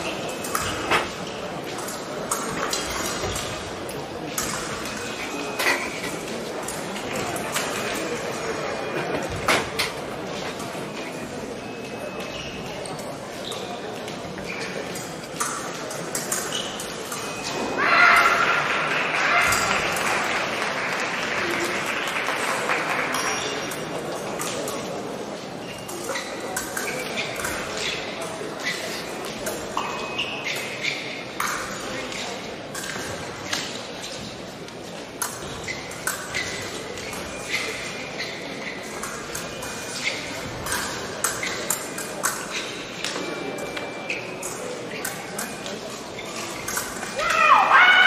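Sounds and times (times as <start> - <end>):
fencing blades clinking: 0.0 - 18.6, 21.6 - 48.0
large hall noise: 0.0 - 48.0.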